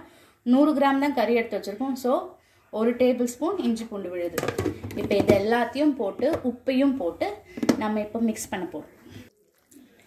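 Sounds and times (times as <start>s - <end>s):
woman talking: 0.5s - 9.0s.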